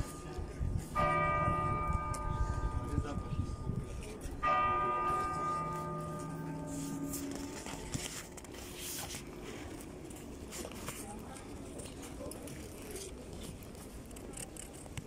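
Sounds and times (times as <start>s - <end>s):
large church bell ringing: 0.0s - 8.8s.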